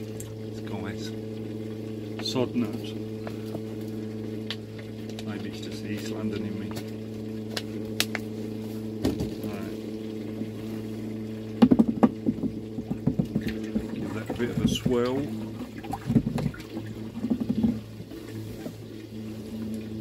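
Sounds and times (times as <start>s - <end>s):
low machine hum: 0.0s - 20.0s.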